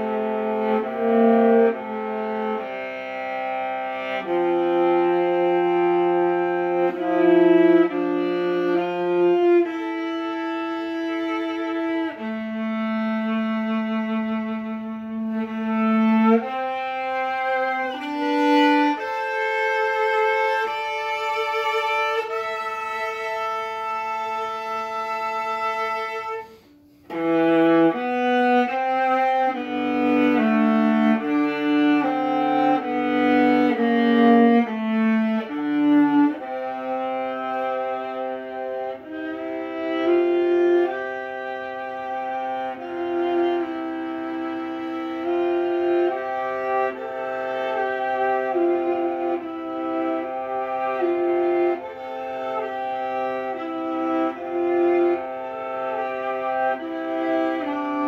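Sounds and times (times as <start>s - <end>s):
bowed viola: 0.0s - 58.0s.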